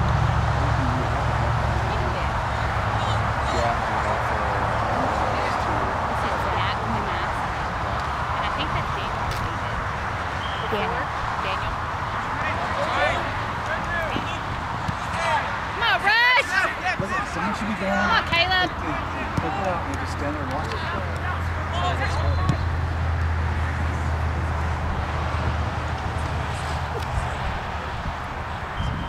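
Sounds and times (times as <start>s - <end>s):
background murmur: 0.0s - 29.0s
distant shouts and calls: 0.4s - 19.9s.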